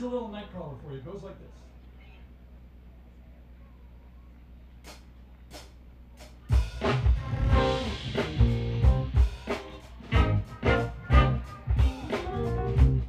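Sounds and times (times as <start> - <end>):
smooth jazz band playing: 6.4 - 13.0.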